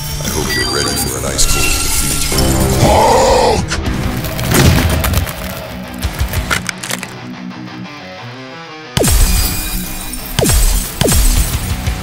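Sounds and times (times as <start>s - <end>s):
dramatic background music: 0.0s - 12.0s
ice cracking and shattering: 4.1s - 7.2s.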